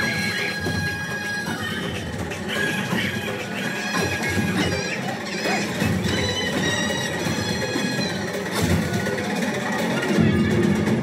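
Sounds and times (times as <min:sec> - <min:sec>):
orchestral film music over speakers: 0:00.0 - 0:11.0.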